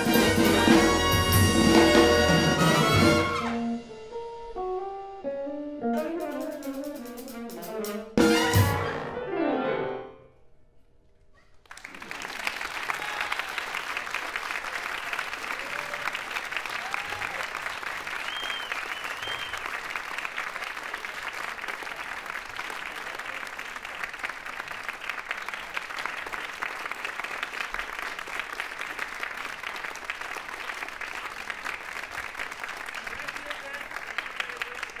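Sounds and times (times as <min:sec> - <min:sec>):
audience applauding: 0:11.6 - 0:35.0
crowd cheering: 0:11.6 - 0:35.0.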